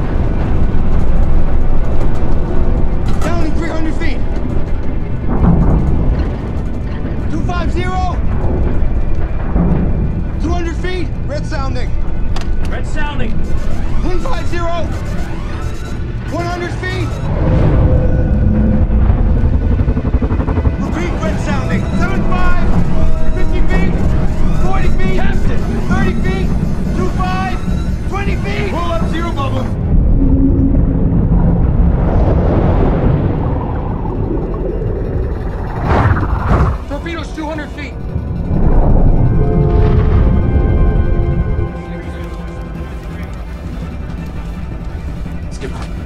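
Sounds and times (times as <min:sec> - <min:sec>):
deep steady rumble: 0:00.0 - 0:46.0
film score music: 0:00.0 - 0:46.0
fast even pulsing: 0:12.8 - 0:46.0.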